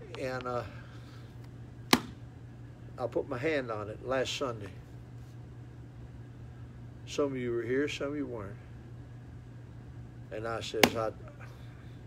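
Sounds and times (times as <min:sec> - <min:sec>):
hand slapping a book cover: 0:01.9 - 0:02.2, 0:10.8 - 0:11.1.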